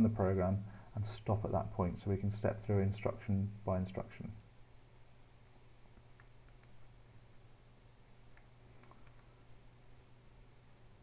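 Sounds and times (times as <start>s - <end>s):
low steady hum: 0.0s - 11.0s
computer mouse clicks: 6.0s - 6.8s, 8.3s - 9.4s.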